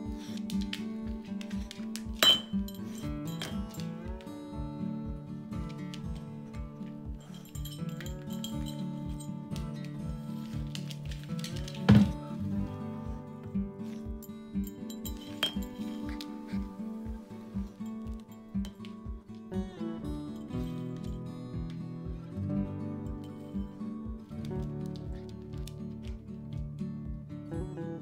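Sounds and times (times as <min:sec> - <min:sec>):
acoustic guitar music: 0:00.0 - 0:28.0
glass mug clinking on floor: 0:01.4 - 0:03.9, 0:07.2 - 0:09.8, 0:13.9 - 0:16.7.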